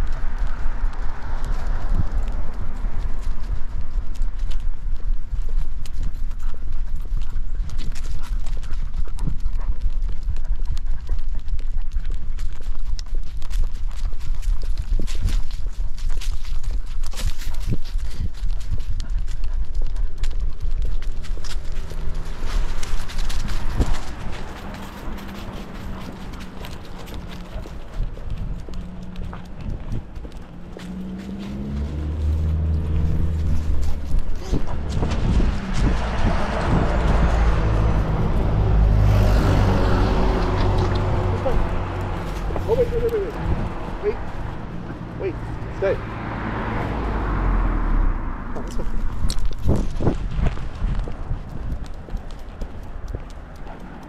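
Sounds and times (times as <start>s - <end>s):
dog paw steps: 0.0s - 38.5s, 48.6s - 54.0s
low rumble: 0.0s - 54.0s.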